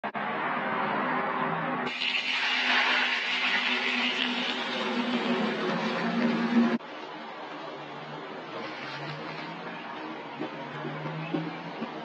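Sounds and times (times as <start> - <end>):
hot liquid hissing in oil: 1.9 - 5.4.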